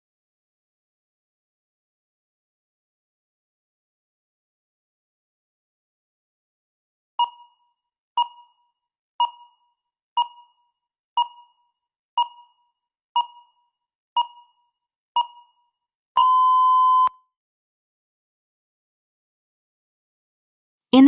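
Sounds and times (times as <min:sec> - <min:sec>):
electronic timer beeps: 0:07.2 - 0:17.2.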